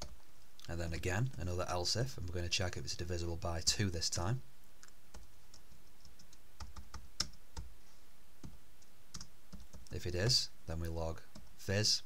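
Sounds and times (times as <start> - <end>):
typing on computer keyboard: 5.1 - 7.7.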